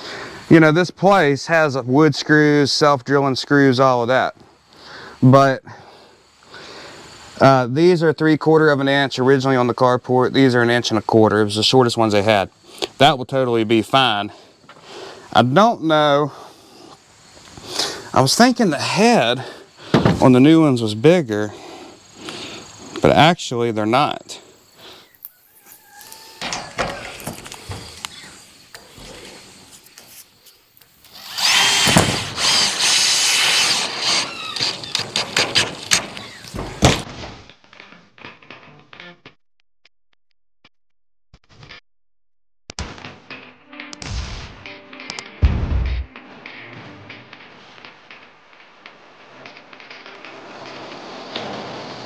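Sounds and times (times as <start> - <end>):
cordless driver driving screws: 31.1 - 36.6
background music: 42.8 - 51.2.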